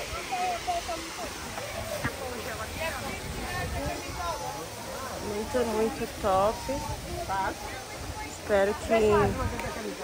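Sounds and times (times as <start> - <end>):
faint voices: 0.0 - 10.0
steady rushing noise: 0.0 - 10.0.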